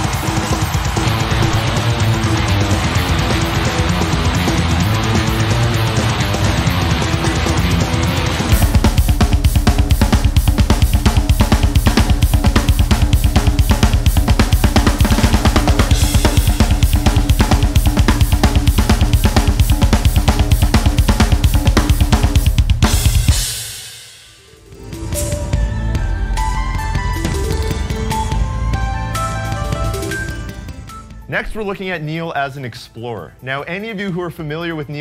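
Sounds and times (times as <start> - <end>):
snare drum hits: 0.0 - 1.8
rapid double bass drum strokes: 0.1 - 23.8.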